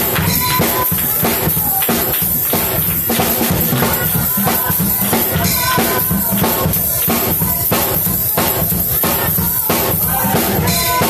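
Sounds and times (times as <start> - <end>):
drum kit beat: 0.0 - 11.0
gospel music: 0.0 - 11.0.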